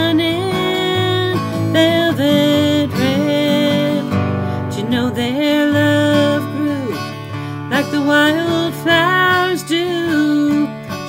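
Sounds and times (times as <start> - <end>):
strummed acoustic guitar: 0.0 - 11.0
woman singing country song: 0.0 - 11.0.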